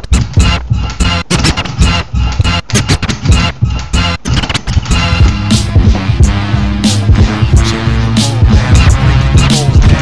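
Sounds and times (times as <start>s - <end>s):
choppy music bursts: 0.0s - 10.0s
record scratching: 0.0s - 10.0s.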